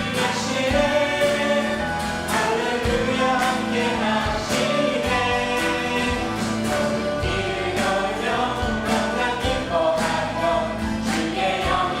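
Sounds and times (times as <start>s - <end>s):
acoustic guitar: 0.0s - 12.0s
group singing praise song: 0.0s - 12.0s.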